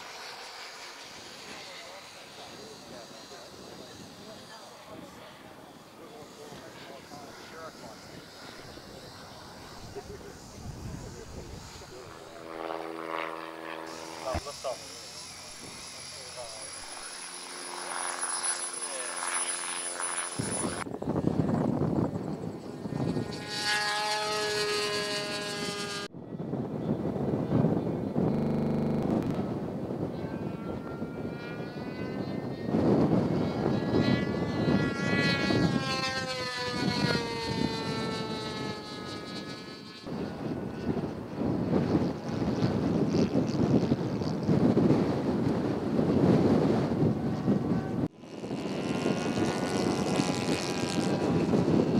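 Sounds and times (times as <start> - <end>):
model aircraft engine in flight: 0.0 - 51.9.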